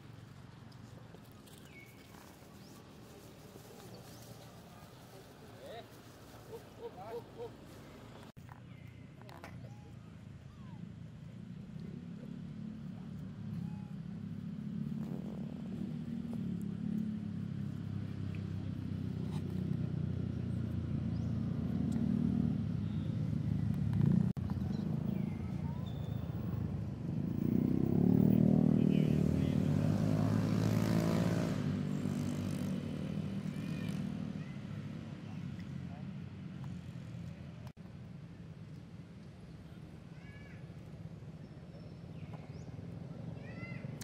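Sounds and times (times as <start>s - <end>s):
vehicle engine passing by: 11.4s - 37.6s.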